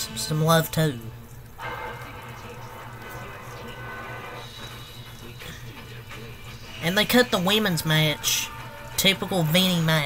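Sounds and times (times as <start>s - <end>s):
faint television sound: 0.0s - 10.0s.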